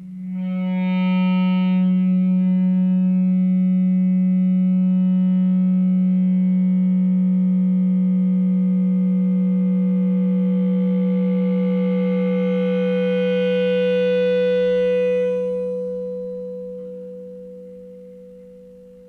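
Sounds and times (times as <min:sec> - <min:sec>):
gong-like electric guitar tone: 0:08.2 - 0:19.0.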